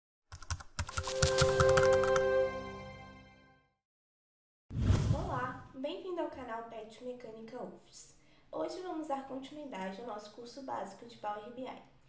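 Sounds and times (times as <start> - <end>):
rapid keyboard typing clicks: 0.3 - 2.2
held ringing musical chord: 1.1 - 3.6.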